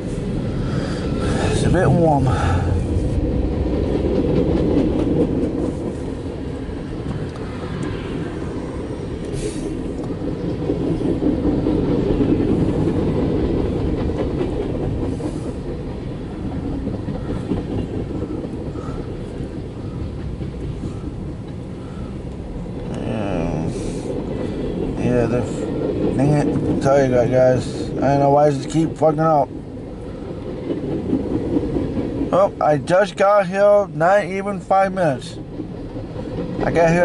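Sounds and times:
train wheels rumbling on rails: 0.0 - 37.0.

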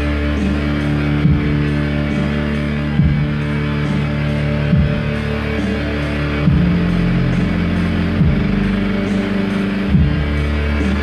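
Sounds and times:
electric keyboards playing chords: 0.0 - 11.0.

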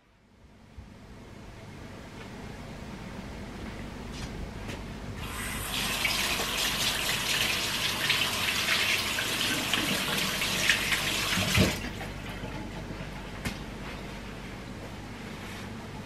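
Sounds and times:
tap water running into sink: 5.2 - 12.1.

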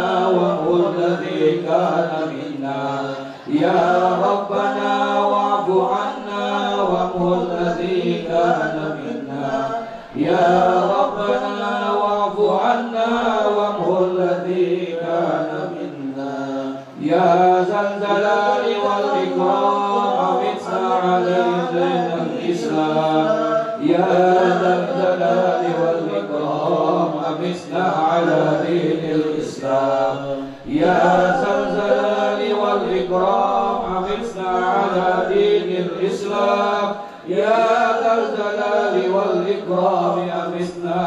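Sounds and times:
men chanting into microphones: 0.0 - 41.0.

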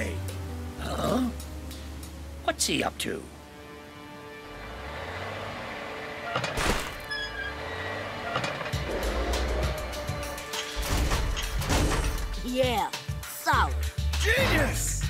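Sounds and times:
cartoon background music: 6.4 - 15.0.

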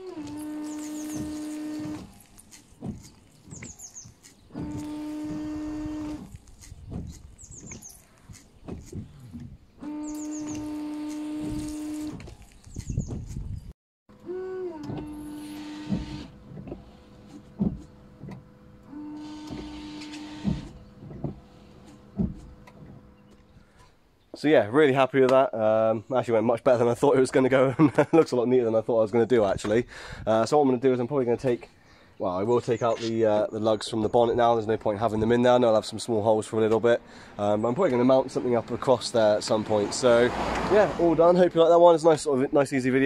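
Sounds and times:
windscreen washer pump whining: 0.0 - 24.1, 32.7 - 43.0.

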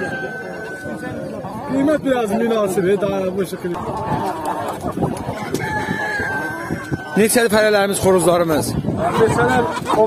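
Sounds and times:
rooster crowing: 5.4 - 7.4.

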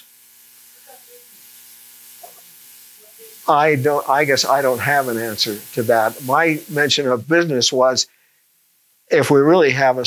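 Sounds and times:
faint electrical hum: 0.0 - 10.0
steady hiss: 0.0 - 10.0.

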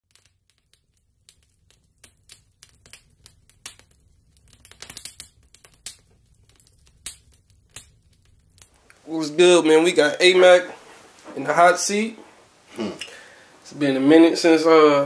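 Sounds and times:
fire crackling and popping: 0.0 - 15.0.

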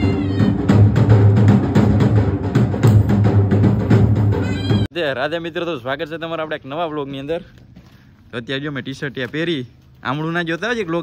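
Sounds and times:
high wavering cry: 0.0 - 0.8
dhol drums beating: 0.0 - 4.9.

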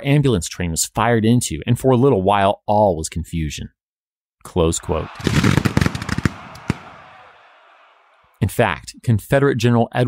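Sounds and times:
gunfire echo: 5.0 - 7.4
gunshots: 5.0 - 7.9.

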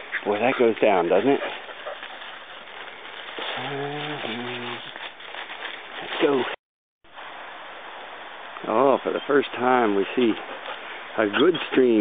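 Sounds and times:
man speaking: 0.2 - 1.5.

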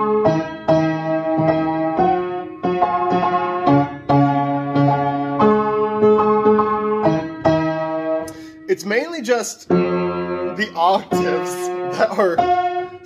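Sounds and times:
out-of-tune piano chords: 0.0 - 8.5, 9.6 - 13.0.

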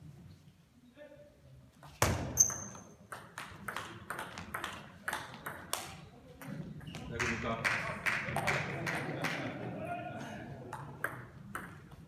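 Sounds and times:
table tennis ball hitting bats and table: 1.8 - 9.4, 10.7 - 12.0.

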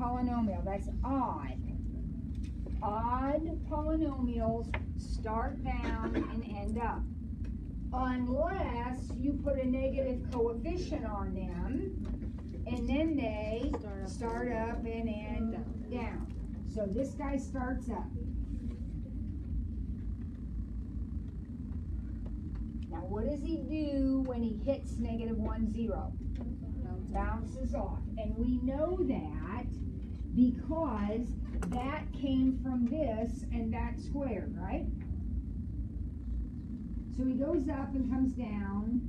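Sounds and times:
low room rumble: 0.0 - 39.0.

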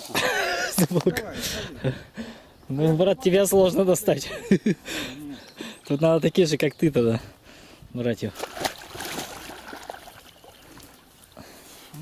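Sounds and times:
pond water splashing: 8.2 - 11.4.

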